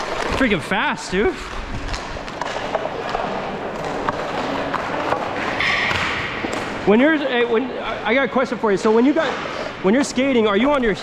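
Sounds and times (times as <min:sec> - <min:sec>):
knocks of sticks and pucks: 0:01.3 - 0:06.8.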